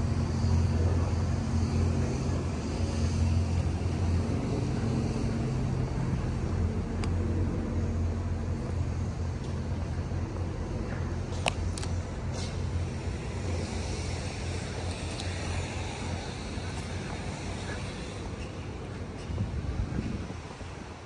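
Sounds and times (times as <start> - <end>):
low mechanical drone: 0.0 - 21.0.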